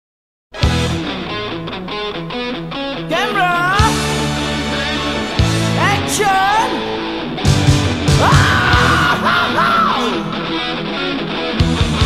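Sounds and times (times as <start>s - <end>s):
heavy metal band playing: 0.6s - 12.0s
high yelled vocal: 3.1s - 10.8s.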